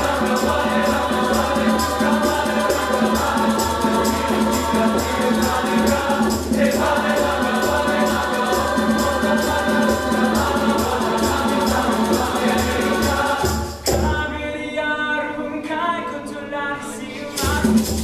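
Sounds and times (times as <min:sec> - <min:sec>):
shaker: 0:00.0 - 0:13.9, 0:17.3 - 0:18.0
choir singing: 0:00.0 - 0:14.2
conga drums: 0:00.0 - 0:14.5, 0:17.3 - 0:18.0.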